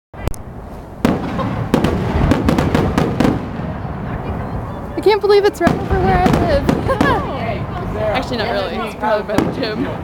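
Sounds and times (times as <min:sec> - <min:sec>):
fireworks bursting: 0:00.2 - 0:10.0
low rolling rumble: 0:00.3 - 0:10.0.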